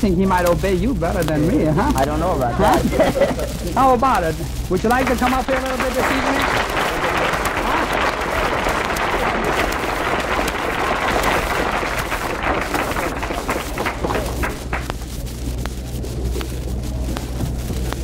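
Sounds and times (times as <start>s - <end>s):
audience applauding: 4.7s - 15.2s.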